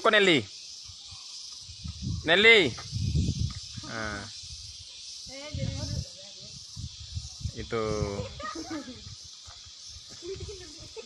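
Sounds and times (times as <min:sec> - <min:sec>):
steady high-pitched hiss: 0:00.0 - 0:11.0.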